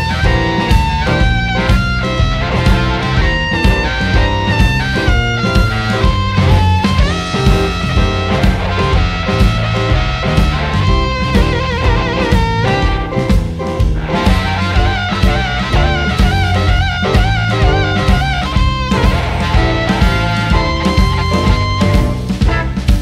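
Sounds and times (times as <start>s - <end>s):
electric blues band: 0.0s - 23.0s
lead guitar bent notes: 0.0s - 23.0s.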